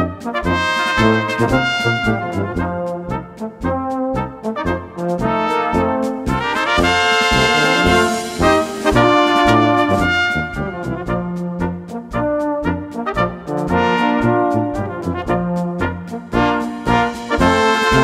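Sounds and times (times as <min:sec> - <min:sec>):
brass ensemble playing a march: 0:00.0 - 0:18.0.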